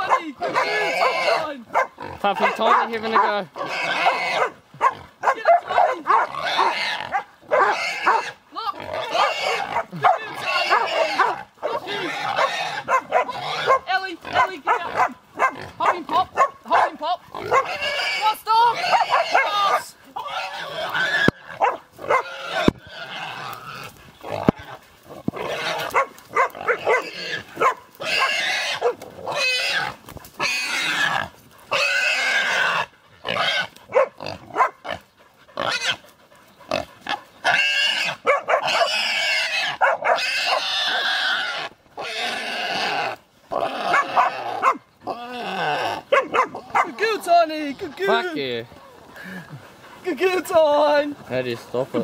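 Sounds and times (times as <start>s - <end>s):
pig squealing loudly: 0.0s - 16.5s, 17.3s - 35.0s, 35.6s - 36.0s, 36.7s - 48.4s.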